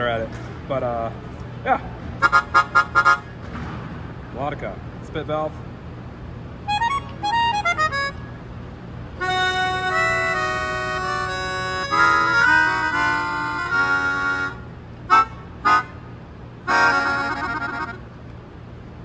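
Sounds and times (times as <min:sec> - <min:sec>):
melodica chords: 0:02.2 - 0:03.4, 0:06.6 - 0:08.5, 0:09.2 - 0:18.2.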